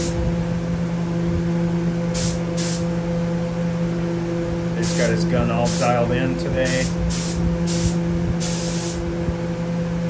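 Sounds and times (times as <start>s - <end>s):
loud multi-tone hum: 0.0s - 10.0s
spray gun hissing: 2.1s - 2.9s, 4.8s - 6.0s, 6.6s - 9.0s.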